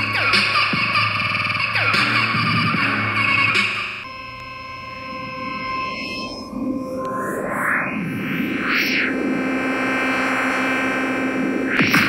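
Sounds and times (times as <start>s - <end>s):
electronic synthesizer music: 0.0s - 12.0s.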